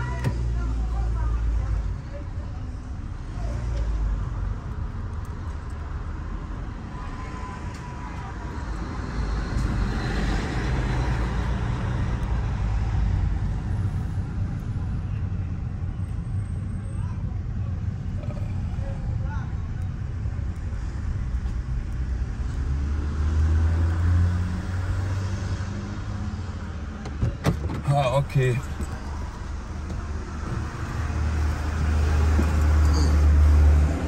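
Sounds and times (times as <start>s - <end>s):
car road and engine rumble: 0.0s - 34.0s.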